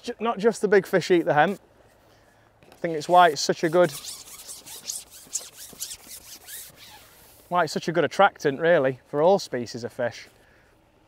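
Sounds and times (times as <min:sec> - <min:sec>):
fishing pole rasping through hands: 0:02.9 - 0:07.4.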